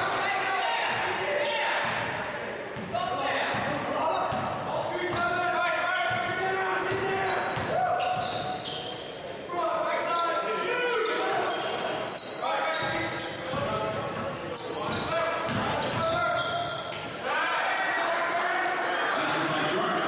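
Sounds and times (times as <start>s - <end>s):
voices and shouts echoing: 0.0s - 20.0s
ball dribbled on hardwood court: 2.8s - 4.5s.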